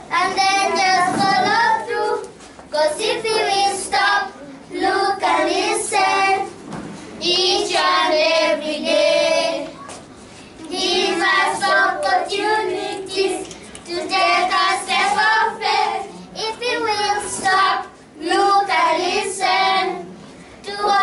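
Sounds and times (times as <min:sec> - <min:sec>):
children singing together: 0:00.0 - 0:06.6, 0:07.2 - 0:09.8, 0:10.6 - 0:21.0.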